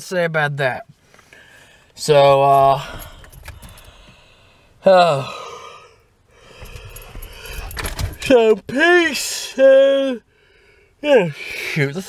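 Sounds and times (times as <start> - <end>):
car interior rumble: 2.0 - 4.8, 6.2 - 9.2
faint clicks and rattling: 2.6 - 4.2.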